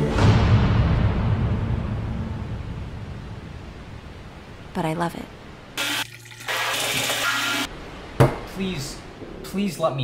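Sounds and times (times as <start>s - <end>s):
low rumble with hiss: 0.0s - 5.8s.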